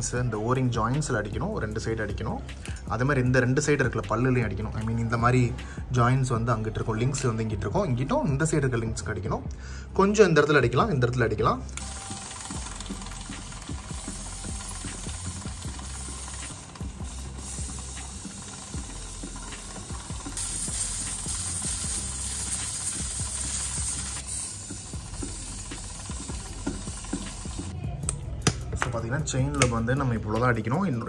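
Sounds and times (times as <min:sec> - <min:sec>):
aerosol spray hiss: 0:11.8 - 0:27.8.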